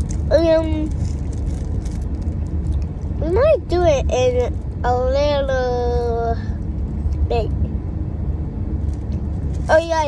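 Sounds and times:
car cabin rumble: 0:00.0 - 0:10.0
child speaking: 0:00.3 - 0:00.9, 0:03.2 - 0:06.6, 0:07.2 - 0:07.7, 0:09.7 - 0:10.0.

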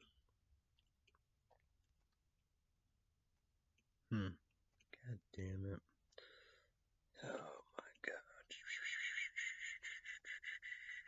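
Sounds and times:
man whispering: 0:07.2 - 0:11.0.

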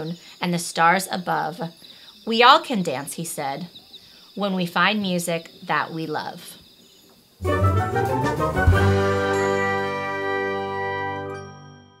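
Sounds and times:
chime-like ringing chord: 0:09.0 - 0:12.0.

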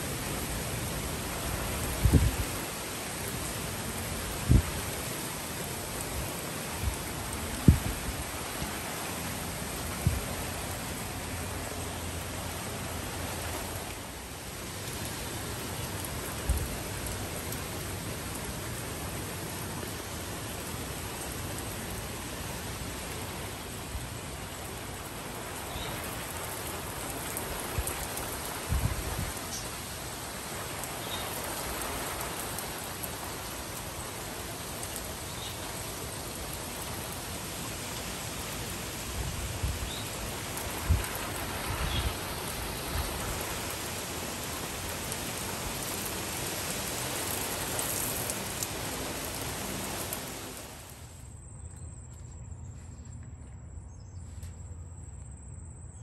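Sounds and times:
heavy rain on trees and deck: 0:00.0 - 0:51.4.

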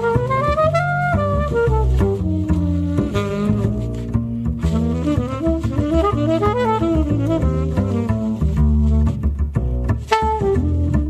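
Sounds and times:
jazz saxophone: 0:00.0 - 0:11.0
pizzicato double bass: 0:00.0 - 0:11.0.

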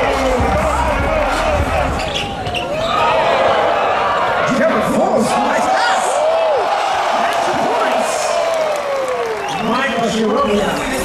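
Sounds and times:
crowd din: 0:00.0 - 0:08.0
crowd shouting and whooping: 0:00.0 - 0:11.0.

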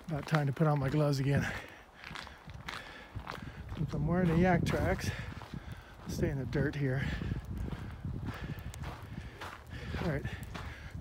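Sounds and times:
footsteps with cleats on dirt and ice: 0:00.0 - 0:11.0.

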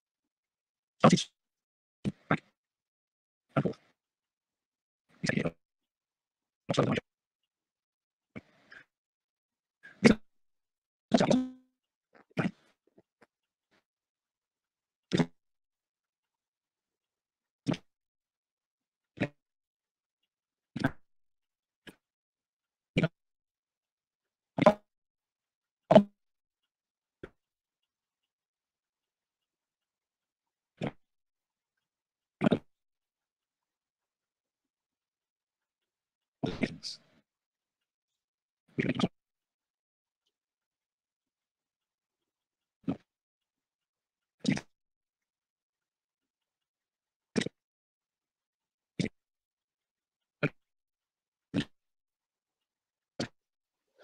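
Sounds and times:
garbled sound blips: 0:11.2 - 0:11.7.

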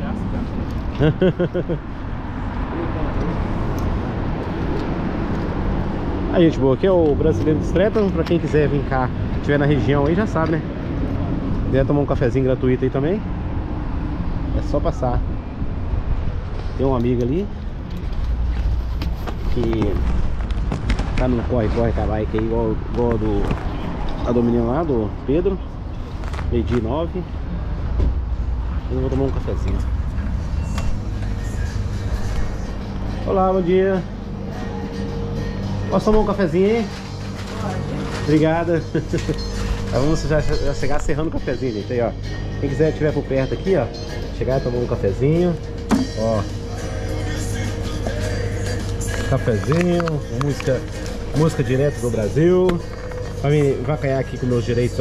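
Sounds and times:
road traffic rumble: 0:00.0 - 0:55.0.

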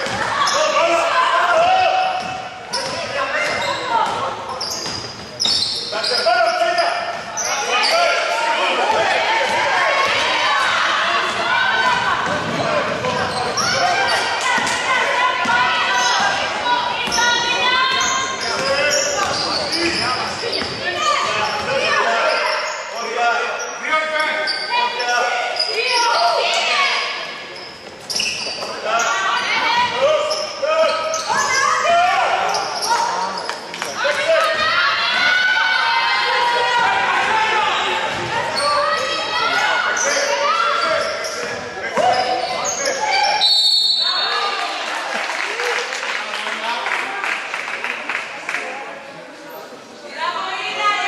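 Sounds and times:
players calling and shouting: 0:00.0 - 0:45.7.

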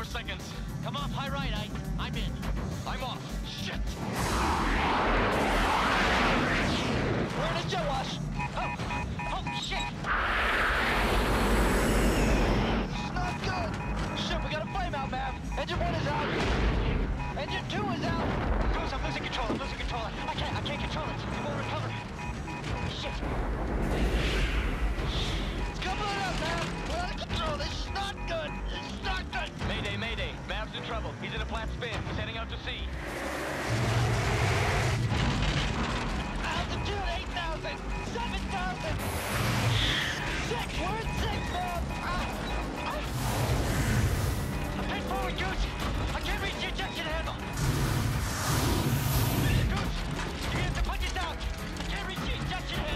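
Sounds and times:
music: 0:00.0 - 0:06.3, 0:12.9 - 0:34.9, 0:35.7 - 0:52.9
jet engines roaring: 0:04.0 - 0:09.0, 0:09.9 - 0:15.5
beeping warning tone: 0:07.4 - 0:10.1, 0:11.0 - 0:23.4, 0:24.7 - 0:29.6, 0:34.2 - 0:50.8.

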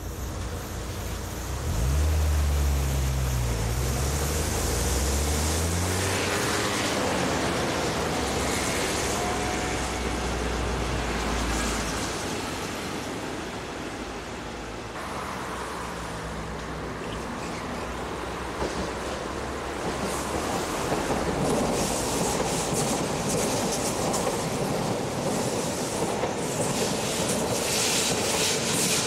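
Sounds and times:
electric train passing: 0:00.0 - 0:29.0.

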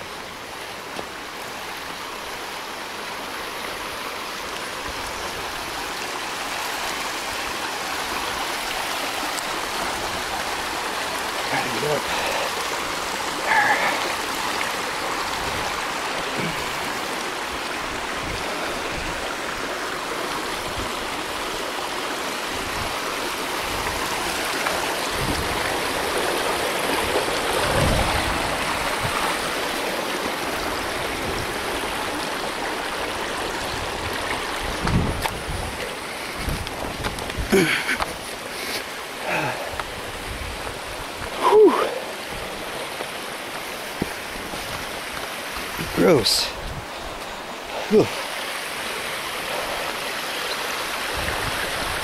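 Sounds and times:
wind buffeting microphone: 0:25.0 - 0:26.1, 0:26.8 - 0:29.4, 0:33.5 - 0:38.2, 0:46.6 - 0:47.2, 0:51.0 - 0:52.0.

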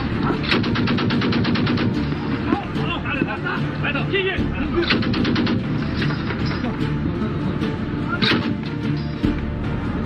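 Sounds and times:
machine gun firing: 0:00.4 - 0:02.0, 0:04.9 - 0:05.8.

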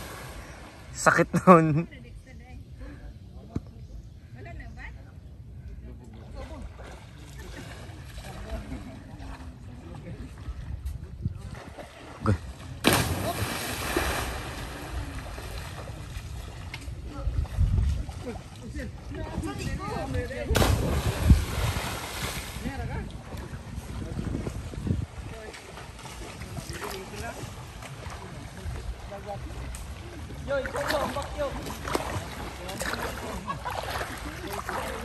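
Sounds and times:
distant voices of swimmers: 0:01.7 - 0:35.0
wind rumble on microphone: 0:08.3 - 0:12.3, 0:14.4 - 0:30.5.

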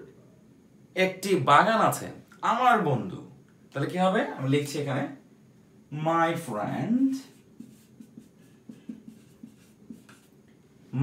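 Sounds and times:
marker writing on whiteboard: 0:07.2 - 0:10.4.

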